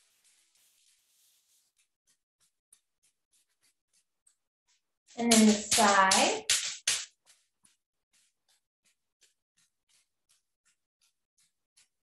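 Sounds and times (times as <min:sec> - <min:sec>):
stick tapping against leg: 0:01.7 - 0:04.4, 0:05.2 - 0:12.0.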